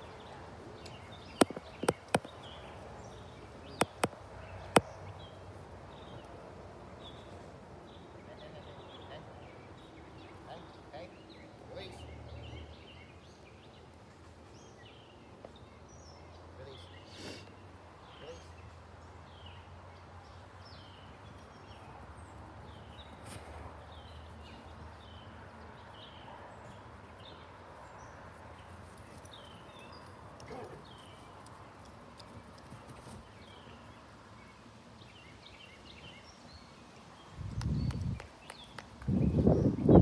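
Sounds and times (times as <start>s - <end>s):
faint low outdoor hum: 0.0s - 40.0s
small birds chirping: 0.0s - 40.0s.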